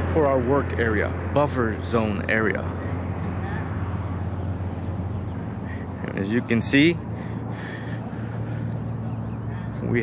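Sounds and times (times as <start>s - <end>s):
road noise: 0.0s - 10.0s
vehicle engine hum: 0.0s - 10.0s.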